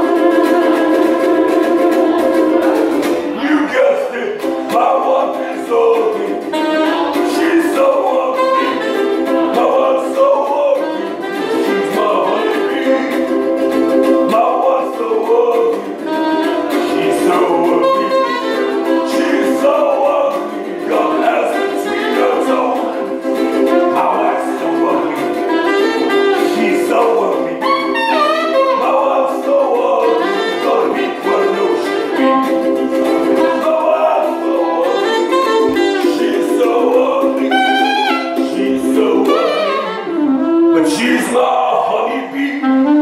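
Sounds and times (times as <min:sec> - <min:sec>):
strummed ukulele: 0:00.0 - 0:43.0
saxophone solo: 0:06.3 - 0:14.2, 0:15.8 - 0:38.4, 0:39.1 - 0:41.4, 0:42.4 - 0:43.0.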